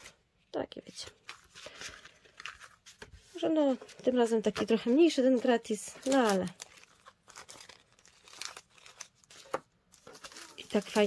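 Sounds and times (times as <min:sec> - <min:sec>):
paper rustling and scraping: 0:01.0 - 0:11.0.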